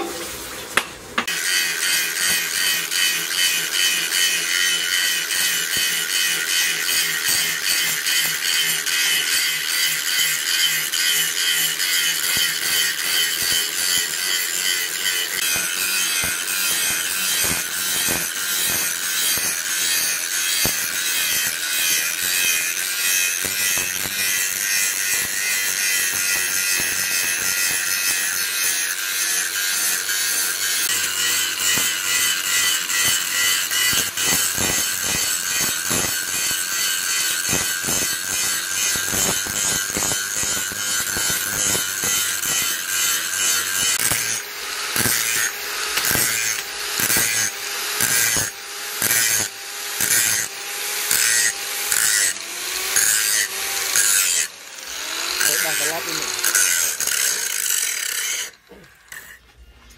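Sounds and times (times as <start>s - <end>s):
angle grinder grinding steel: 1.2s - 59.9s.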